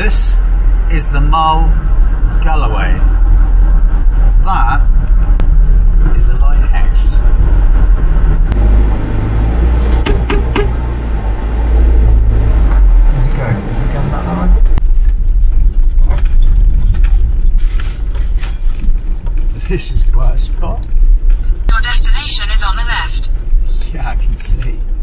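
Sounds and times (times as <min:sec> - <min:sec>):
engine and road rumble: 0:00.0 - 0:25.0
light clinks and rattles: 0:14.8 - 0:21.7.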